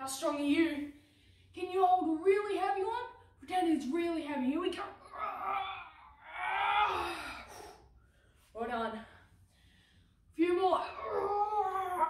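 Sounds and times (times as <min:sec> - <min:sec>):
young man groaning with effort: 0:05.1 - 0:07.5.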